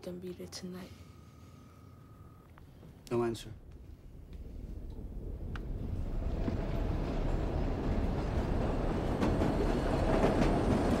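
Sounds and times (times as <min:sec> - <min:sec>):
low rumble: 0:03.6 - 0:09.7.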